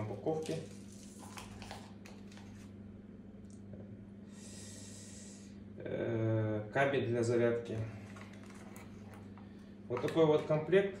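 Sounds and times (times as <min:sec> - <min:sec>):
steady low hum: 0:00.0 - 0:11.0
plastic packaging crinkling: 0:00.2 - 0:02.7.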